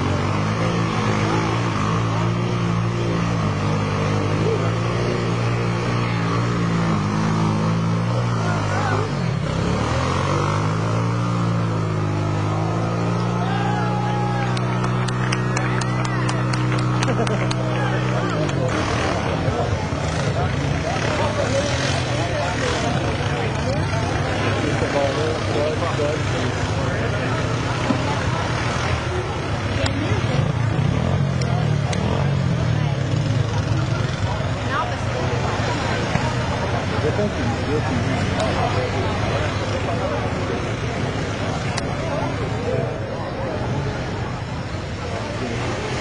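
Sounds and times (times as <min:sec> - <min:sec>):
quad engine revving: 0:00.0 - 0:46.0
spectators talking: 0:00.0 - 0:46.0.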